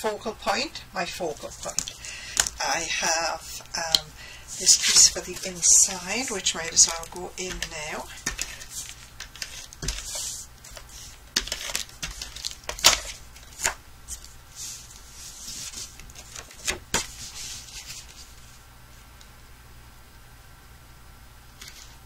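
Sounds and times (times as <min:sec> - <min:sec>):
paper rustling and sliding: 0:04.5 - 0:18.6, 0:21.6 - 0:22.0.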